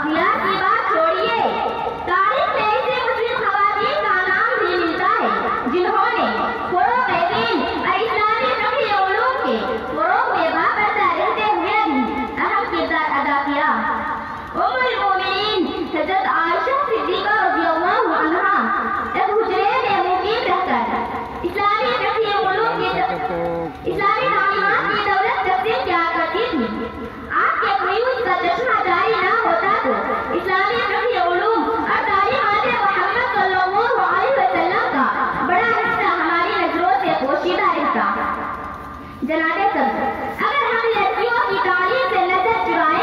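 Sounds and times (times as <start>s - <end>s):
voice over public address system: 21.6s - 25.8s.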